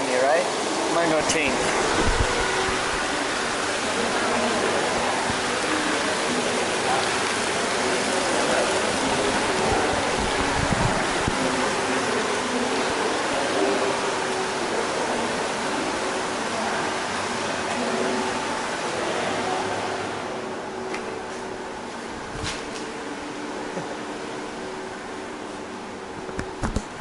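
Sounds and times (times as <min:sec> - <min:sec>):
water pouring into pools: 0:00.0 - 0:20.0
faint voices: 0:00.8 - 0:20.5.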